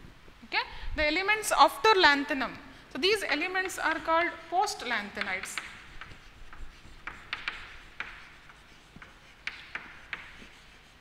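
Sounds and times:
chalk scratching on blackboard: 3.2 - 11.0
chalk ticking on board: 3.3 - 11.0.

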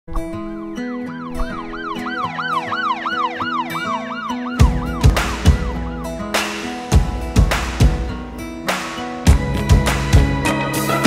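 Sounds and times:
intro music with sustained notes: 0.2 - 11.0
siren effect: 0.3 - 6.4
heavy drum hits: 4.6 - 5.9, 7.0 - 8.1.

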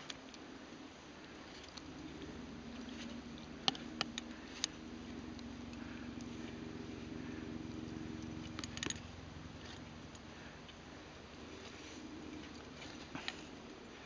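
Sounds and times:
drone of low tones: 1.2 - 14.0.

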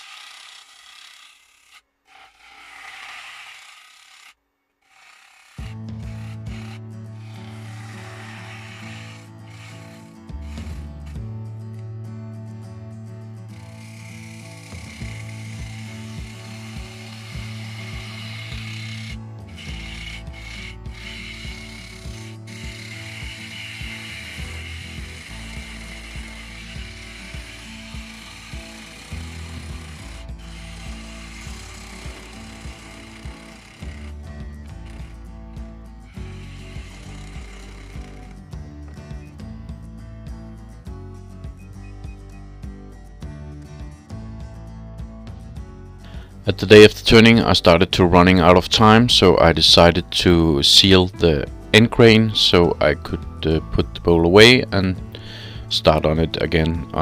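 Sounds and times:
gouge cutting wood on lathe: 0.0 - 11.4, 13.4 - 39.2
background music: 5.5 - 57.0.

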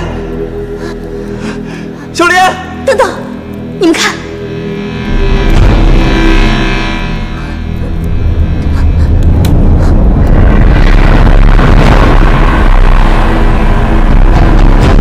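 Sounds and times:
dramatic background score: 0.0 - 15.0
heavy low rumble: 4.4 - 15.0
sharp hits: 4.6 - 15.0.

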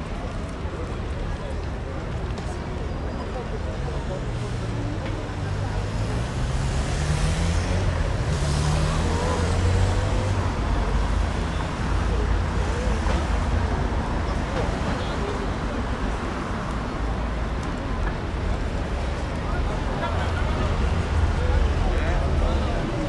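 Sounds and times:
voices of passers-by: 0.0 - 23.0.

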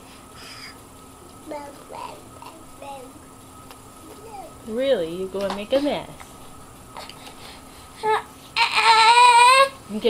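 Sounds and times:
baby crying: 8.0 - 9.8.

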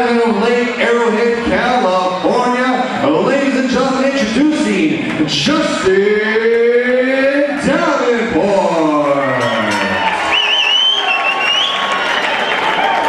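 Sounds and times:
crowd cheering: 4.7 - 13.0
wavering whistle: 10.2 - 12.8.

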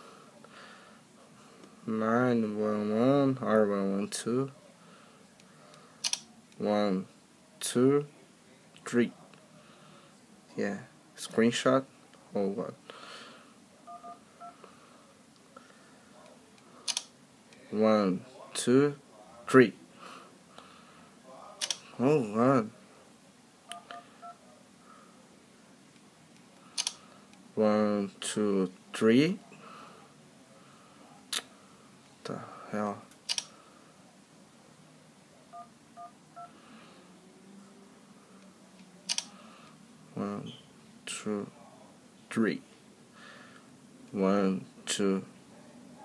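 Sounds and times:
touch-tone keypad beeps: 13.9 - 14.6.

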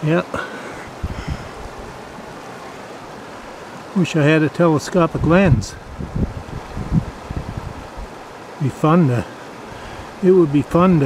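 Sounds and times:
flowing river water: 0.0 - 11.0.

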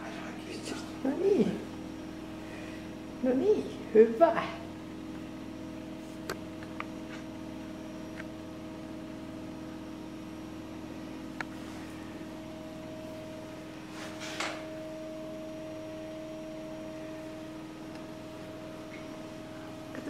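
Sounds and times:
steady mechanical hum: 0.0 - 20.0.

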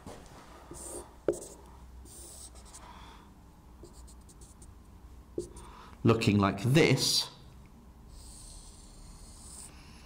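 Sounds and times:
marker drawing on whiteboard: 0.7 - 2.8, 3.8 - 4.8, 5.4 - 5.7, 8.1 - 9.8.

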